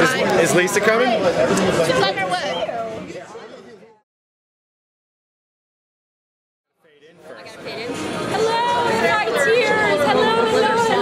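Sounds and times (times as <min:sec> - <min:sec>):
bar chatter: 0:00.0 - 0:04.0, 0:06.8 - 0:11.0.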